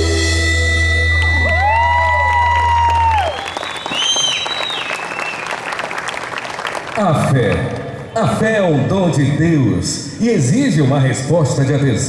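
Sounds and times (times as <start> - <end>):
audience applause and cheering: 0.9 - 7.1.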